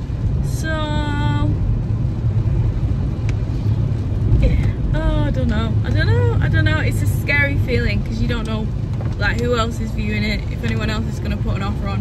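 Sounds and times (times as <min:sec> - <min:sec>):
car engine rumble in cabin: 0:00.0 - 0:12.0.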